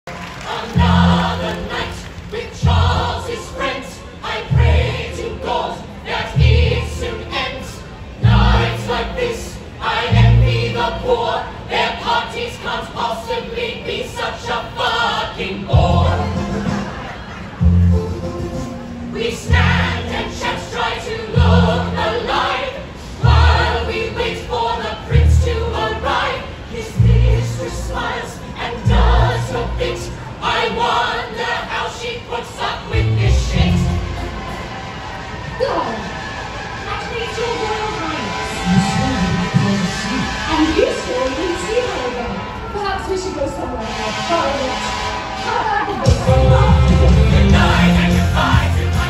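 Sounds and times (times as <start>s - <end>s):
ensemble singing in harmony: 0.1s - 49.0s
amplified accompaniment: 17.6s - 22.4s.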